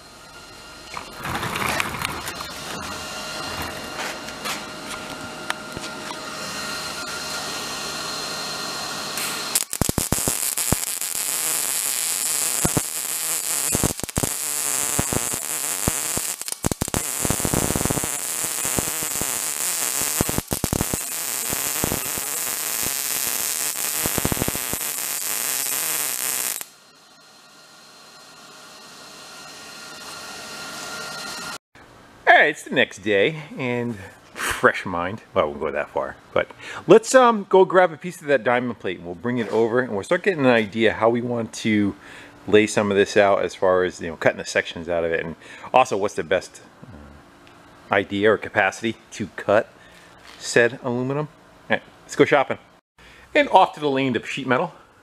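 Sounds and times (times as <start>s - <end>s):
welding arc crackling sizzle: 0.8s - 31.6s.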